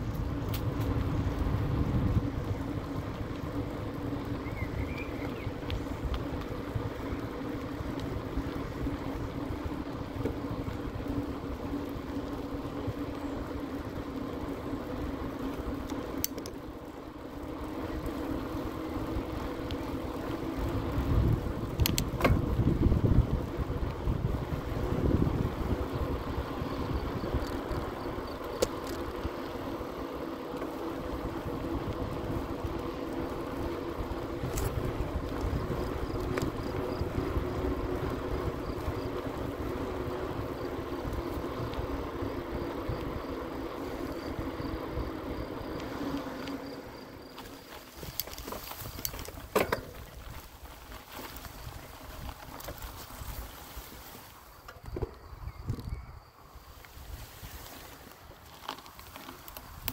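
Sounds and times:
wind buffeting microphone: 0:00.0 - 0:14.1, 0:19.0 - 0:29.4, 0:31.0 - 0:45.7, 0:54.8 - 0:56.3
bicycle tyres on asphalt: 0:00.0 - 0:59.9.

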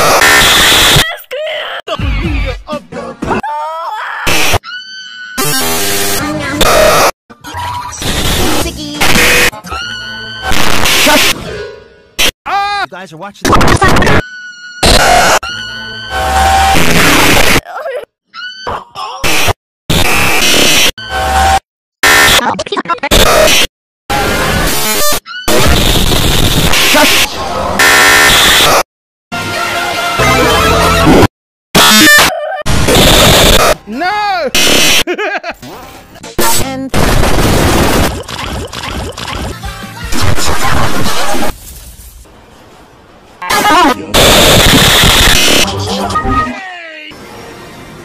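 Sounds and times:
loud harsh noise: 0:31.0 - 0:33.8, 0:36.9 - 0:39.2, 0:43.6 - 0:45.8
distorted pitched bursts: 0:31.8 - 0:33.8, 0:34.6 - 0:35.0, 0:36.4 - 0:41.5, 0:43.6 - 0:46.3
loud distorted blast of noise: 0:32.7 - 0:33.8, 0:34.6 - 0:35.0, 0:36.9 - 0:38.3, 0:43.5 - 0:45.8.

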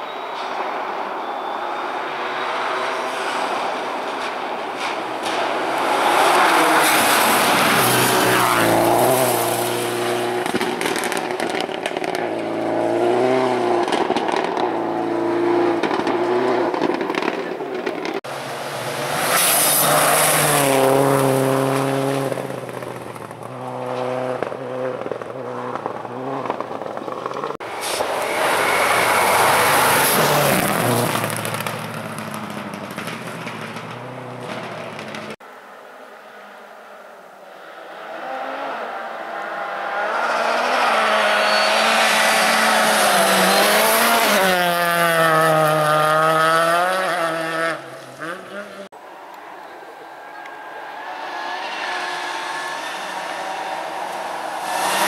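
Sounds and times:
rally cars passing at speed: 0:00.1 - 0:55.0
engines revving with gear changes: 0:02.8 - 0:35.4, 0:38.2 - 0:48.9, 0:50.4 - 0:55.0.

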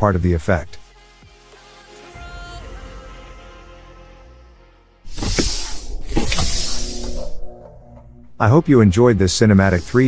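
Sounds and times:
low rumble: 0:05.5 - 0:09.0.

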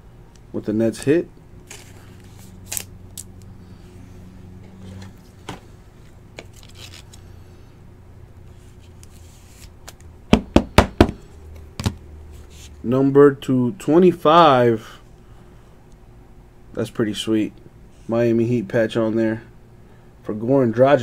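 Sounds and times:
low steady hum: 0:00.0 - 0:21.0
cards and plastic holder handled: 0:01.7 - 0:03.3, 0:06.3 - 0:07.2.

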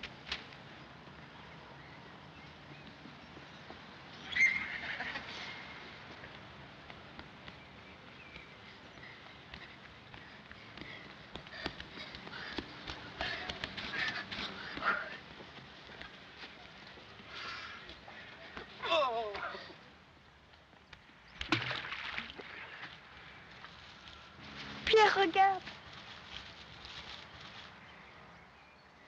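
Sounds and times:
birds calling: 0:00.6 - 0:21.6
crunching steps on leaf litter: 0:23.5 - 0:28.1.

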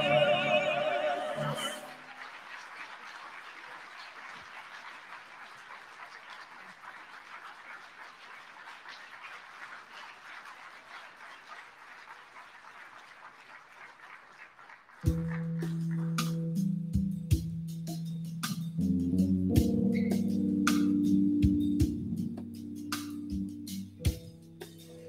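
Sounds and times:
audience applauding: 0:00.0 - 0:16.4.

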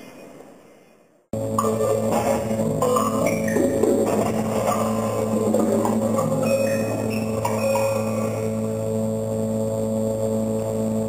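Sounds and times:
low electronic drone: 0:01.3 - 0:11.0
electronic notes: 0:01.4 - 0:11.0.

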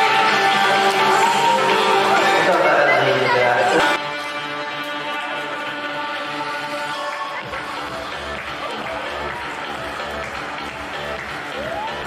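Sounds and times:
people talking indistinctly: 0:00.0 - 0:04.0.

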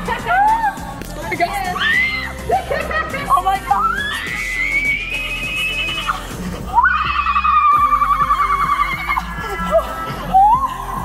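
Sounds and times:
woman screaming: 0:03.7 - 0:06.2, 0:06.8 - 0:09.3.

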